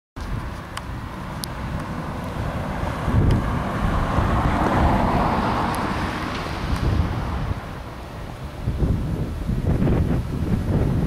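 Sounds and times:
car passing by: 0:00.2 - 0:11.0
wind buffeting microphone: 0:00.2 - 0:11.0.

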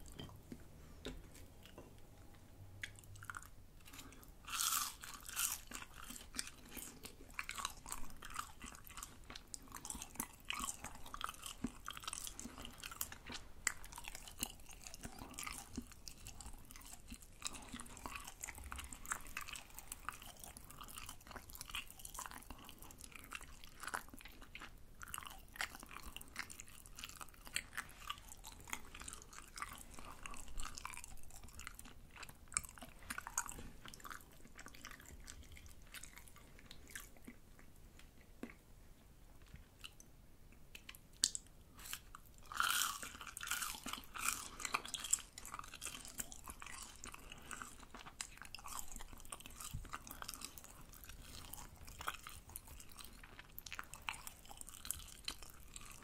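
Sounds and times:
crunchy chewing: 0:02.8 - 0:38.6, 0:39.4 - 0:56.0.

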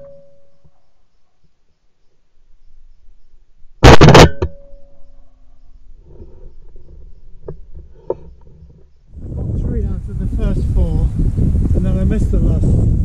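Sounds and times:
loud shotgun shot: 0:03.8 - 0:04.5.

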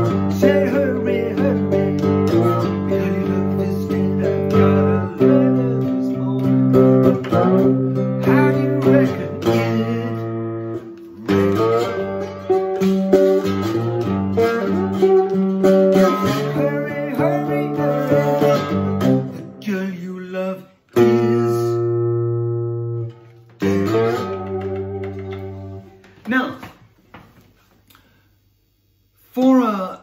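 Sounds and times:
man singing blues: 0:00.0 - 0:22.8, 0:23.6 - 0:25.7
ringing guitar chords: 0:00.0 - 0:26.0
slide guitar: 0:00.0 - 0:26.1.

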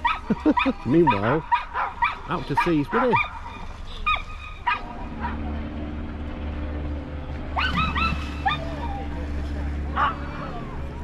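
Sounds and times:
dog yipping: 0:00.0 - 0:02.2, 0:03.0 - 0:05.4, 0:07.6 - 0:09.0, 0:10.0 - 0:10.3
steady low drone: 0:02.2 - 0:11.0.

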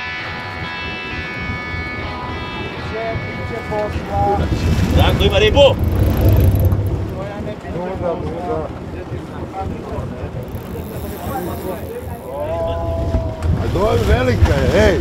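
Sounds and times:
boat engine idling: 0:03.4 - 0:15.0.

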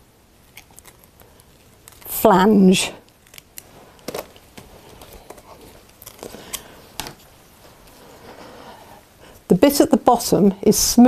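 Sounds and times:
clicks taps and rustles of handling: 0:03.3 - 0:08.0.

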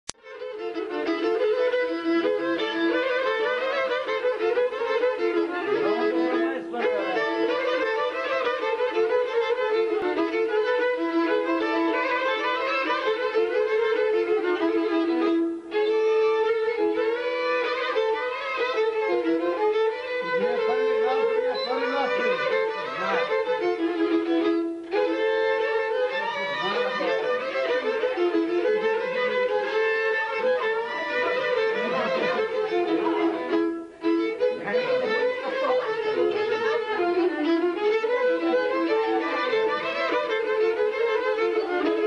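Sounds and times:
bowed folk fiddles playing: 0:00.1 - 0:42.0.

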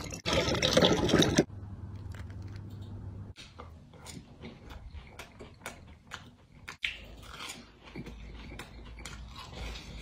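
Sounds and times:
crunchy chewing: 0:03.9 - 0:10.0.

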